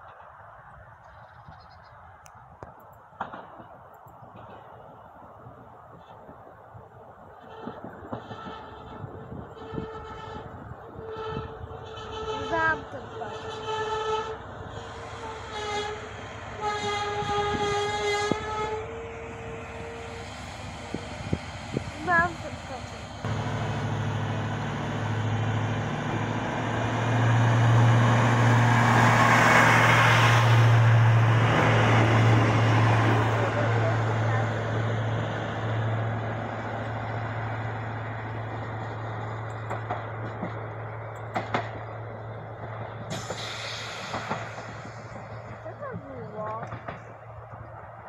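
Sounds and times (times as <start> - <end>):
train wheel and rail noise: 0.0 - 48.0
train horn blasts: 7.4 - 20.2
diesel engine drone: 18.1 - 48.0.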